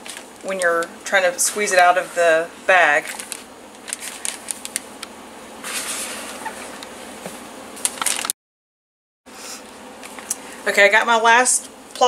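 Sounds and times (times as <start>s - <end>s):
plastic bag rustling: 0.0s - 2.4s, 3.0s - 4.8s, 5.6s - 7.2s, 7.8s - 8.3s
spatula scraping plastic bowl: 5.6s - 6.8s.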